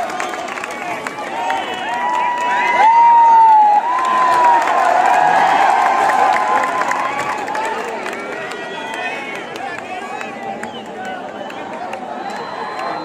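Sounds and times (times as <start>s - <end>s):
crowd cheering and shouting: 0.0s - 13.0s
long held shout: 1.4s - 7.6s.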